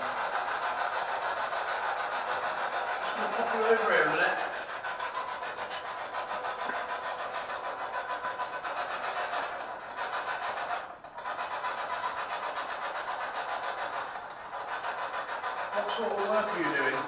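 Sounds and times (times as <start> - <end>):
pulsing static hiss: 15.7 - 17.0.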